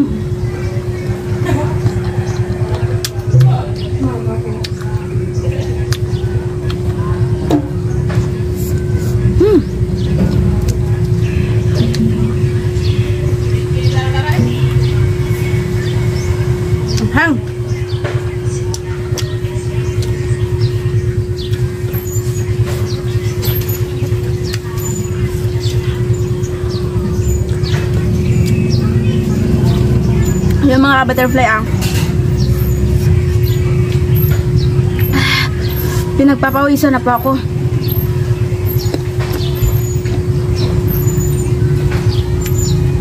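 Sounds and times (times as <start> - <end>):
constant hum: 0.0 - 43.0
low rumble: 25.4 - 43.0.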